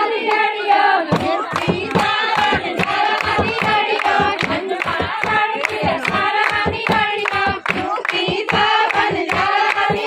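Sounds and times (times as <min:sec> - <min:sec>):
women singing together: 0:00.0 - 0:10.0
quick hand clapping: 0:01.1 - 0:10.0.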